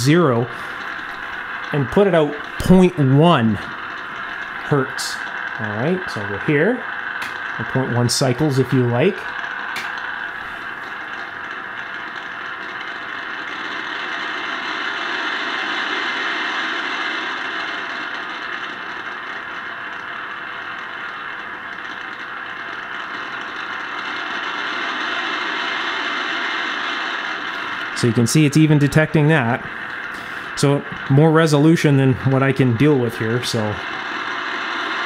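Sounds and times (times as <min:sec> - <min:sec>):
static hiss from speaker: 0:00.0 - 0:35.0.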